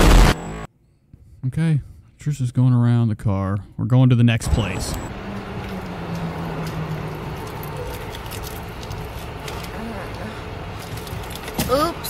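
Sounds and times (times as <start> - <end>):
low hum: 4.4 - 11.6
traffic noise: 4.4 - 12.0.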